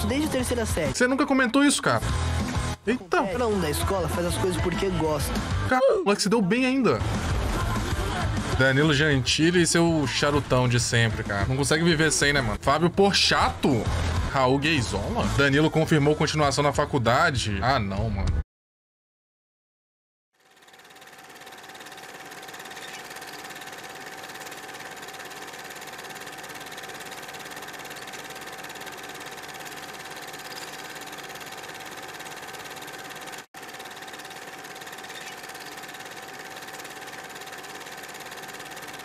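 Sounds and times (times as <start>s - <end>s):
film projector whirring: 7.0s - 12.7s, 20.4s - 39.0s.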